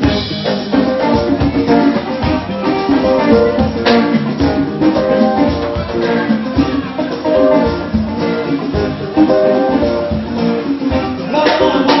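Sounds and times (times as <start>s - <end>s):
guitar lines: 0.0s - 12.0s
rumba band playing: 0.0s - 12.0s.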